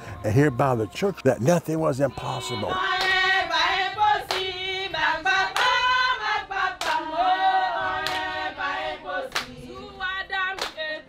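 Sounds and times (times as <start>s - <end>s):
women singing a hymn: 0.0s - 11.0s
hand claps: 3.0s - 3.2s, 4.3s - 4.5s, 5.5s - 5.8s, 6.8s - 7.1s, 8.0s - 8.4s, 9.3s - 9.6s, 10.5s - 10.9s.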